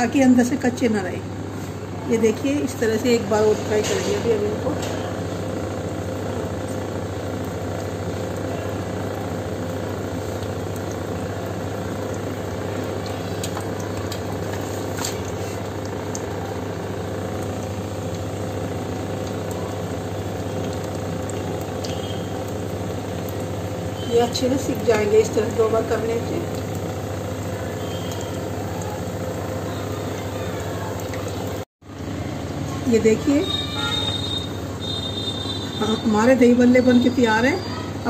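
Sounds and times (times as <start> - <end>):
fritters sizzling in hot oil: 1.5 - 31.7.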